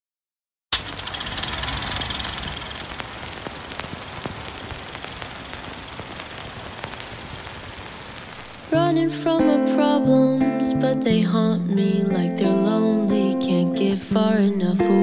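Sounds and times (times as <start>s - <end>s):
film projector clattering: 0.8s - 3.4s
film pops and clicks: 0.8s - 8.8s.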